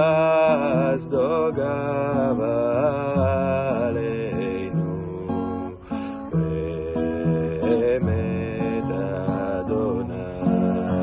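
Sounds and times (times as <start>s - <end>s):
man singing a chant-like melody: 0.0s - 11.0s
strummed acoustic guitar: 0.0s - 11.0s.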